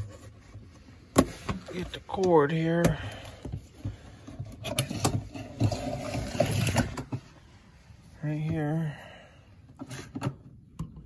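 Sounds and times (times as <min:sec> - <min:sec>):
extension cord scraping and rustling: 0:03.4 - 0:08.0.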